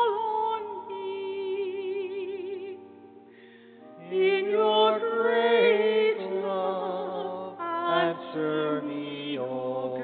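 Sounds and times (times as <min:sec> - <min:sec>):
woman singing a slow chant: 0:00.0 - 0:02.8, 0:04.0 - 0:10.0.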